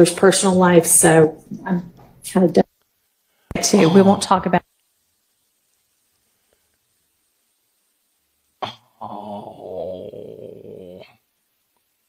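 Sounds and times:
wavering moan-like vocal sound: 0:08.6 - 0:11.2.

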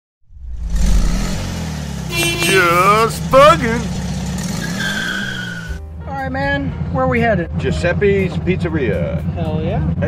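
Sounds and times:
car engine running: 0:00.3 - 0:10.0.

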